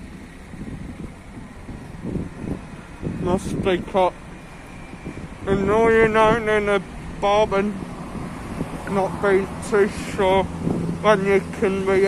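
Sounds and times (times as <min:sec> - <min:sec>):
passing traffic rumble: 0:00.0 - 0:12.0
wind buffeting microphone: 0:00.0 - 0:12.0.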